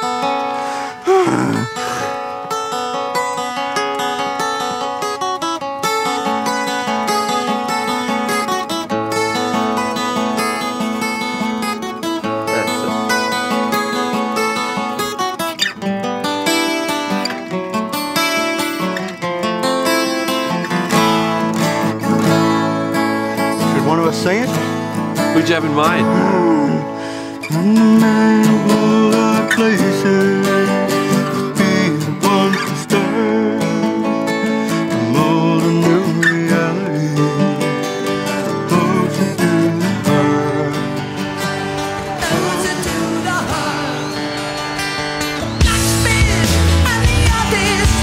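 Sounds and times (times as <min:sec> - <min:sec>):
acoustic guitars playing: 0:00.0 - 0:48.0
deep bass guitar notes: 0:45.4 - 0:48.0.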